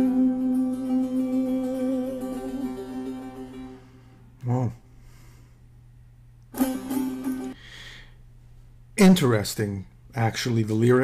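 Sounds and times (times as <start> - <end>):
lute tremolo: 0.0 - 4.1.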